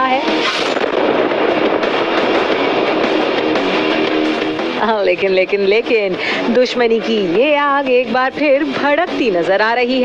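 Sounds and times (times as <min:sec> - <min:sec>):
loud steady rushing noise: 0:00.0 - 0:07.6.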